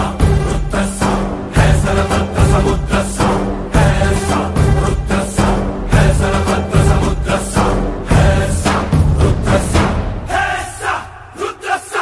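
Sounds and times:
chorus chanting short phrases: 0.0s - 12.0s.

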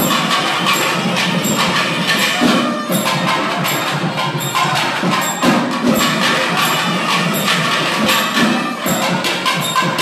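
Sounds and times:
drum beat: 0.0s - 10.0s.

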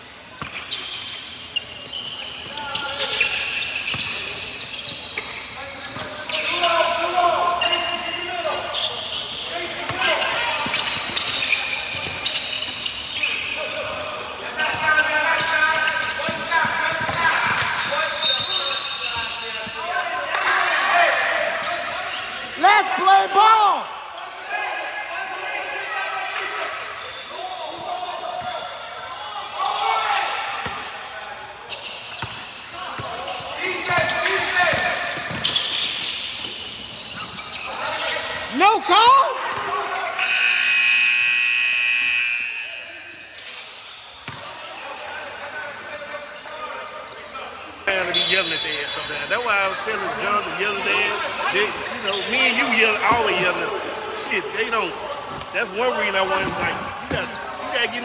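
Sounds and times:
sneakers squeaking: 0.0s - 58.0s
people talking and calling out: 1.0s - 43.8s.

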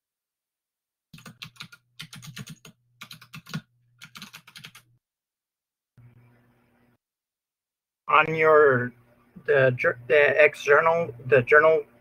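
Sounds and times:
typing on a computer keyboard: 1.1s - 4.9s.

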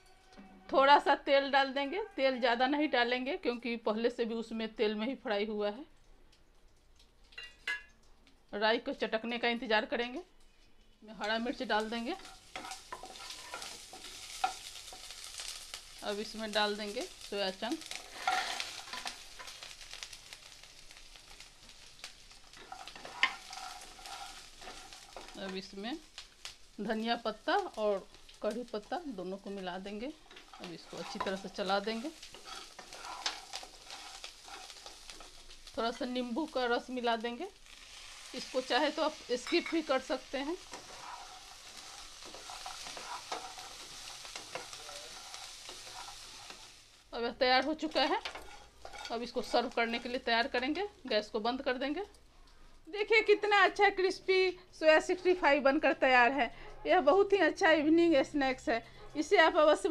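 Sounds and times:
light sizzling: 3.0s - 59.9s
spatula scraping and tapping pan: 11.2s - 15.6s, 17.8s - 19.8s, 22.5s - 25.6s, 29.9s - 35.6s, 39.4s - 46.8s, 47.6s - 50.6s.

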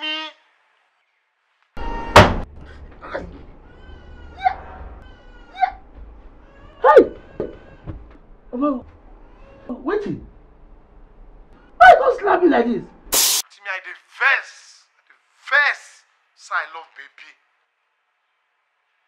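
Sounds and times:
sharp loud hit: 13.2s - 13.4s.

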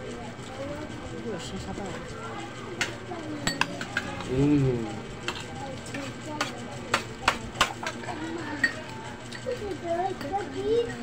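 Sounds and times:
cutlery clinking on a plate: 3.4s - 4.1s.

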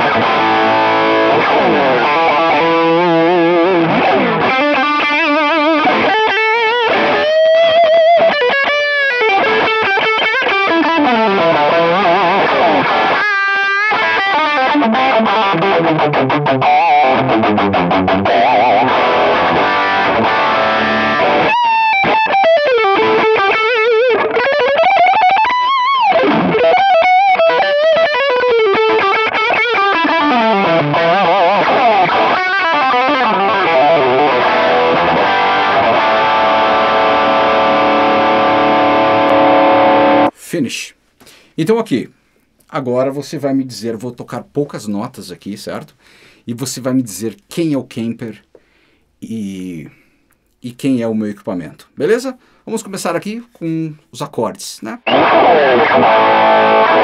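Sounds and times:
distorted electric guitar lead: 0.0s - 40.4s, 54.9s - 57.0s.

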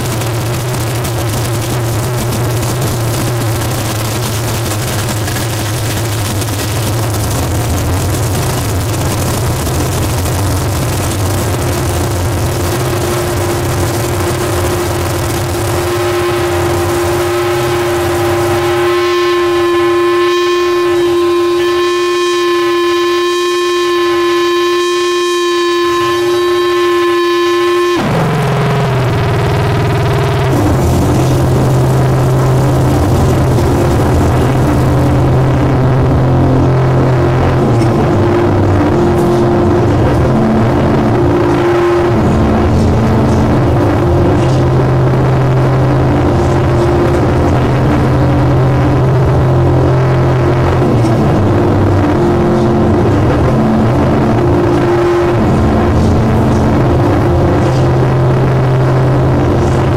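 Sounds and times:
loud distorted noise: 0.0s - 59.9s
pitched drone with overtones: 0.0s - 59.9s.

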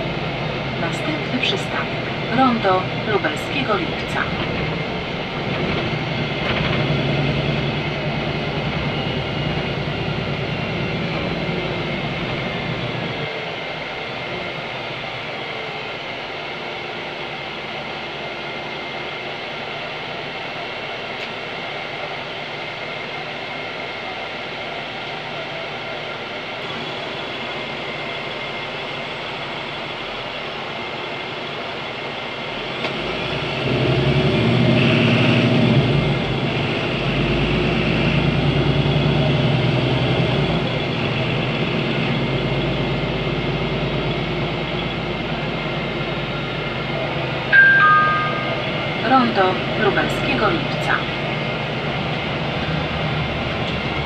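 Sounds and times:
bus diesel engine rumble: 0.0s - 54.0s.

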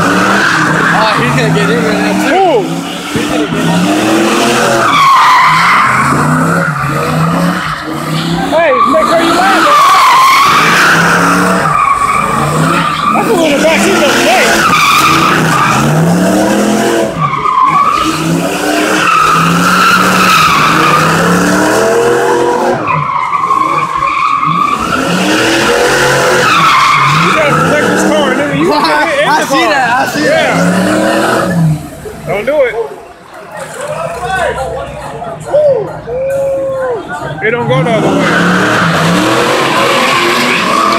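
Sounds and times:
car engine revving hard: 0.0s - 32.6s, 37.5s - 40.9s
tyres squealing and skidding: 0.0s - 40.9s.

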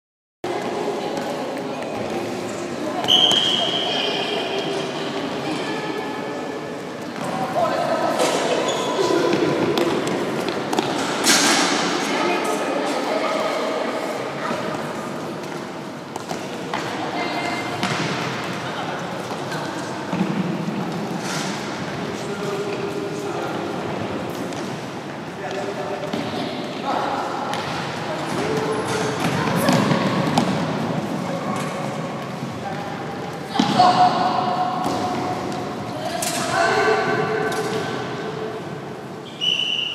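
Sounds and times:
short high whistle: 39.2s - 39.9s.

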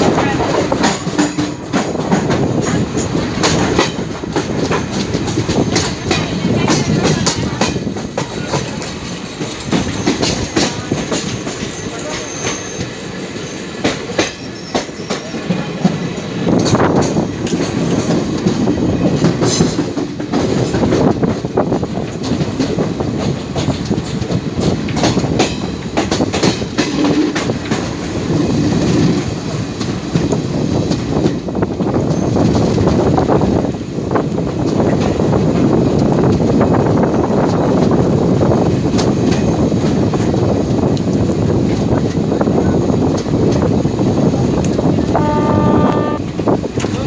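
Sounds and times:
train wheels rumbling on rails: 0.0s - 47.0s.

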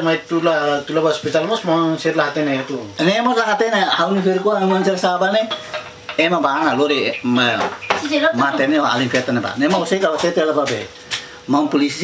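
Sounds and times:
man talking: 0.0s - 12.0s.

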